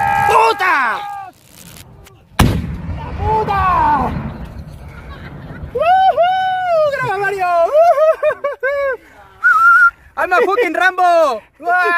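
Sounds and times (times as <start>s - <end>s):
rocket blast with rumbling tail: 1.4s - 6.5s.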